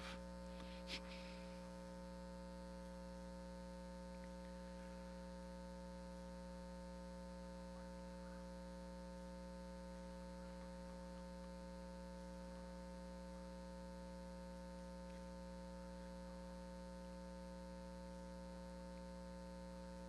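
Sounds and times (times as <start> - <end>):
faint electrical mains hum: 0.0 - 20.0.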